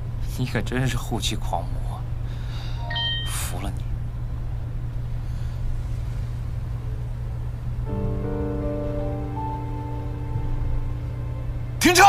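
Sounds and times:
road noise inside car: 0:00.0 - 0:02.8, 0:03.7 - 0:12.0
car engine rumble: 0:03.8 - 0:11.8
music: 0:07.9 - 0:12.0.

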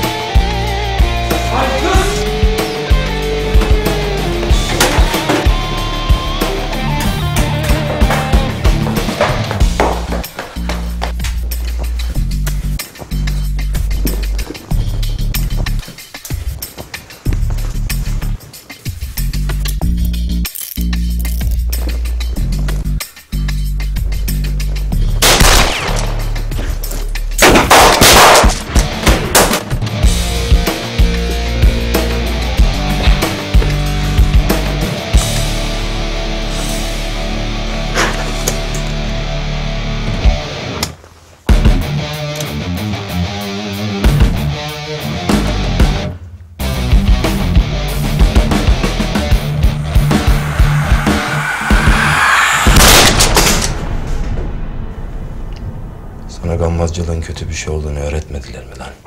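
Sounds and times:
rock music: 0:00.0 - 0:27.5, 0:28.6 - 0:53.8
pistol gunshots: 0:27.4 - 0:29.7.

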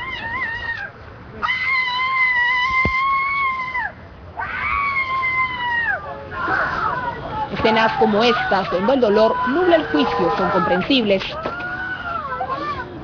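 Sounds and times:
woman wailing in grief: 0:07.8 - 0:12.9.

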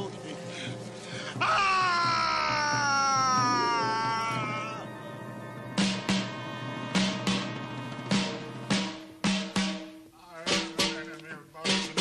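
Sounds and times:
man crying out: 0:01.4 - 0:05.0.

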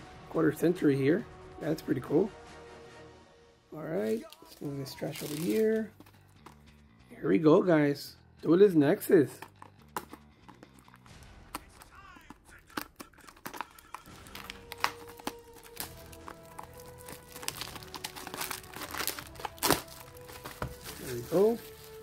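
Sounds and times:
plastic wrap crinkling and tearing: 0:04.0 - 0:06.6, 0:09.4 - 0:22.0.

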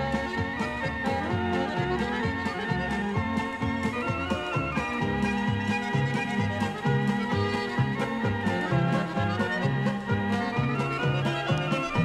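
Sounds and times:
polka band playing: 0:00.0 - 0:12.0.

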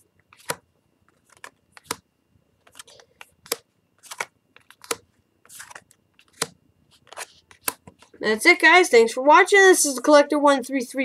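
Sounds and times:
rustle of sliding cards: 0:00.3 - 0:02.0, 0:02.6 - 0:08.2
sharp card snaps: 0:02.7 - 0:05.0, 0:05.6 - 0:08.0.

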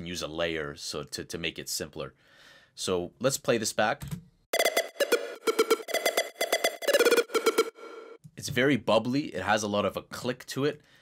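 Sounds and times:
staccato synthesizer riff: 0:04.5 - 0:08.2.

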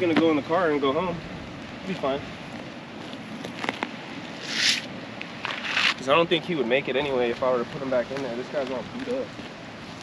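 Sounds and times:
plastic mat rustling scrapes: 0:04.4 - 0:06.0.

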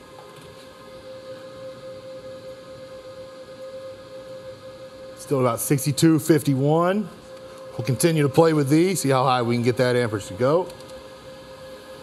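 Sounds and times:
appliance hum: 0:00.0 - 0:12.0
inverter fans whining: 0:00.0 - 0:12.0
space heater fan noise: 0:00.0 - 0:12.0.

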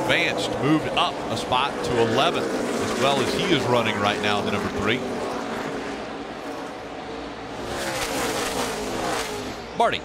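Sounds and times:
race car engines passing: 0:00.0 - 0:10.0.

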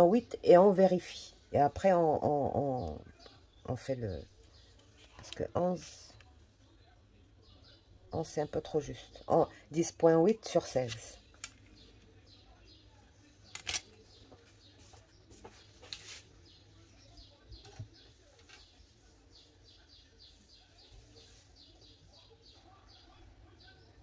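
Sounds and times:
faint bird chirping: 0:00.0 - 0:24.0.

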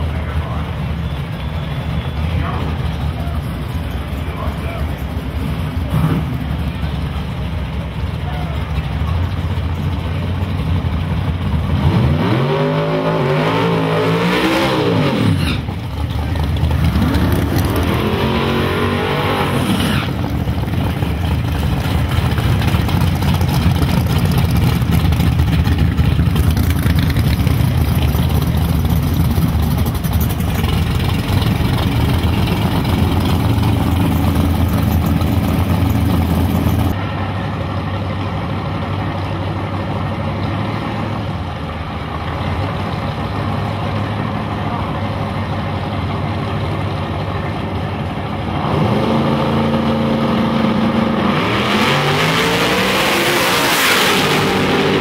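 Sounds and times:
engines revving: 0:00.0 - 0:37.4, 0:48.2 - 0:55.0
engines rumbling low: 0:00.0 - 0:55.0.

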